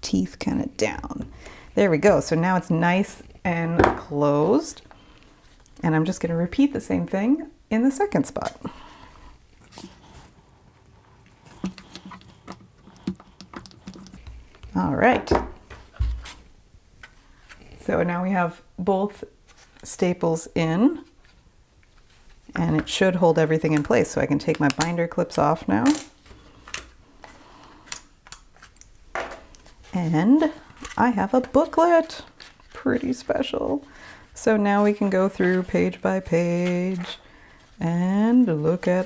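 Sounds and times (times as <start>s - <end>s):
paper rustling: 29.6s - 33.9s, 34.7s - 37.8s
paper handling: 34.7s - 37.8s.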